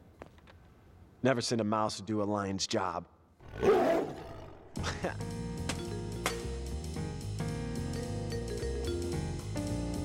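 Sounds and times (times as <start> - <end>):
lion-like roar: 3.4 - 4.8
music: 4.8 - 10.0.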